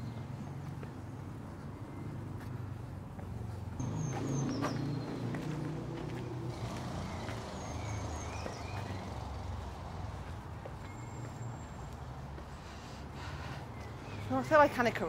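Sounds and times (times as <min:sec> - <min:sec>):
distant traffic rumble: 0:00.0 - 0:15.0
footsteps on gravel: 0:02.4 - 0:12.6
small bird chirping: 0:06.4 - 0:09.7.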